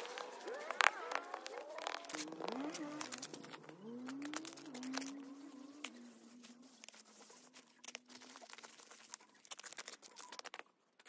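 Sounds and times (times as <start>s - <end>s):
snow crunching: 0.0s - 9.2s.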